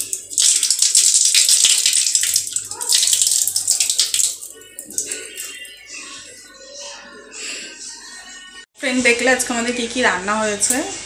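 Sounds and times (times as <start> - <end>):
tap water splashing into sink: 0.0 - 5.5.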